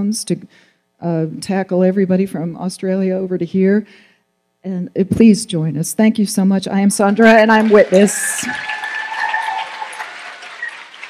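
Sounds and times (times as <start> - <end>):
audience applauding: 7.2 - 11.0.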